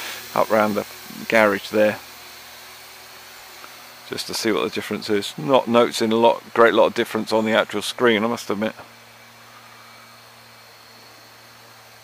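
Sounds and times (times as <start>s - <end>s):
even hiss: 0.0s - 12.0s
toy quadcopter motors whining: 0.0s - 12.0s.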